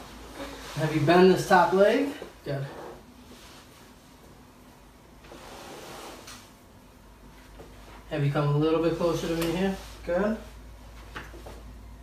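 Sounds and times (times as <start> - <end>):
faint rustling and shuffling: 0.0 - 12.0.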